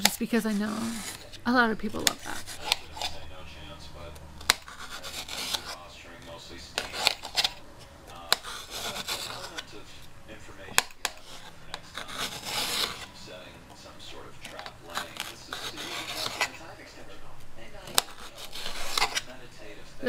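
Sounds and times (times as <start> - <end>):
knife slicing bell pepper: 10.7 - 13.2, 14.4 - 16.6, 17.9 - 19.3.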